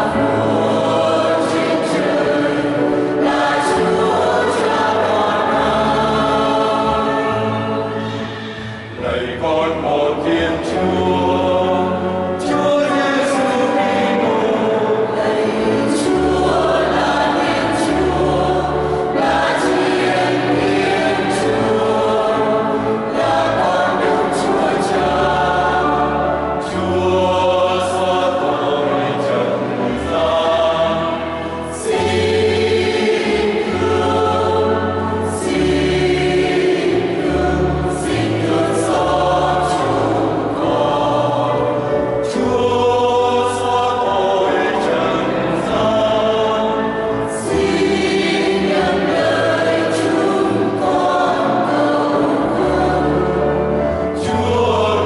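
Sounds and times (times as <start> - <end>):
mixed choir singing a hymn: 0.0 - 55.0.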